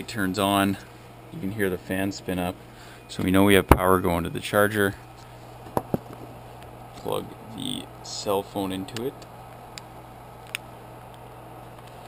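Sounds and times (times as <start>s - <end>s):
cooling fan humming: 0.0s - 12.0s.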